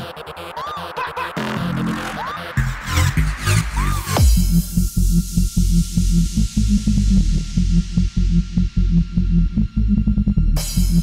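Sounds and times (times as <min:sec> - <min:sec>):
pulsing bass line: 0:01.4 - 0:11.0
pounding kick drum: 0:04.2 - 0:09.7.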